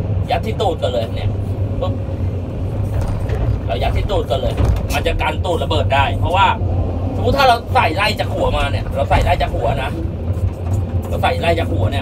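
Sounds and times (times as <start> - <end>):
excavator engine rumbling: 0.0 - 12.0.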